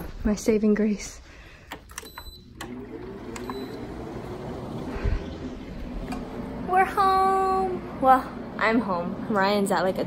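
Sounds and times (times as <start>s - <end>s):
air conditioner fan hissing: 0.0s - 10.0s
control panel beep: 1.9s - 4.0s.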